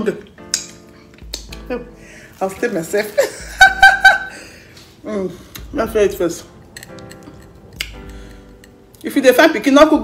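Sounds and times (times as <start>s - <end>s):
faint background music: 0.0s - 10.0s
mouth clicks and smacks chewing: 0.4s - 1.7s.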